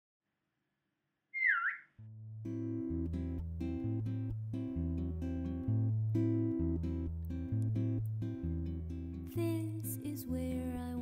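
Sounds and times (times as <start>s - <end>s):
swooping whistle-like tone: 1.4s - 1.9s.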